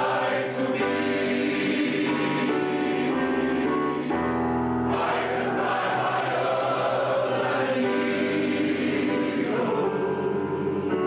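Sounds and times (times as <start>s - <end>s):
male choir singing in harmony: 0.0s - 11.0s.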